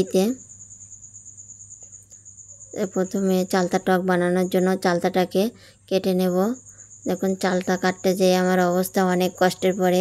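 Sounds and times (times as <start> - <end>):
cricket trilling: 0.0 - 10.0.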